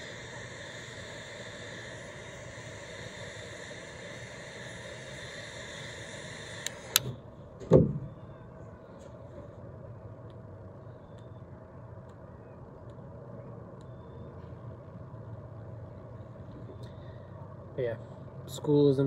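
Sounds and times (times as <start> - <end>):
lighter click: 0.0 - 7.1
torch lighter flame hissing: 0.0 - 7.3.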